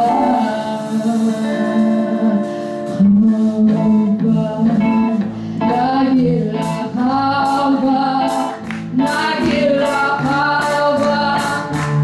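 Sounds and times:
electric guitar: 0.0 - 12.0
woman singing into a microphone: 0.0 - 12.0.

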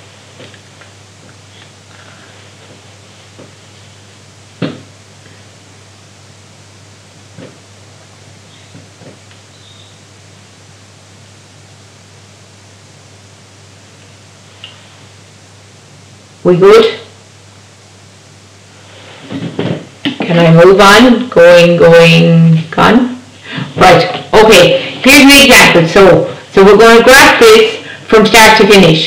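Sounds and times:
steady hiss: 0.0 - 29.0.

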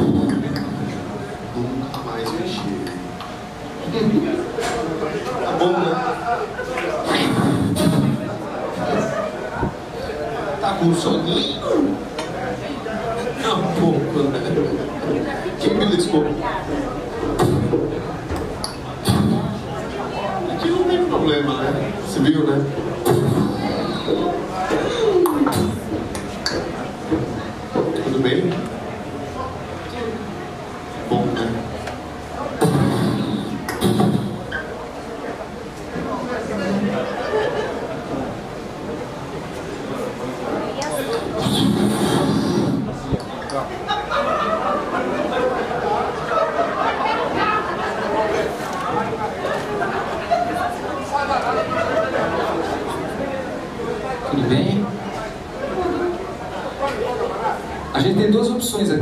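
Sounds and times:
people talking indistinctly: 0.0 - 59.0
voices in a room: 0.0 - 59.0.

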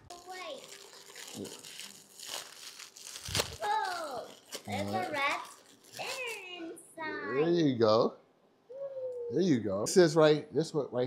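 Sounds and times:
child's high-pitched calls: 3.6 - 4.3.

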